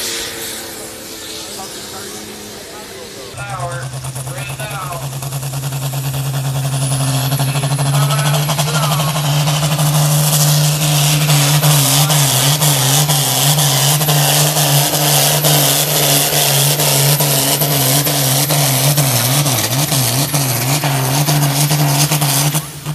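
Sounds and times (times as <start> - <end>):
diesel tractor engine under load: 0.0 - 22.9.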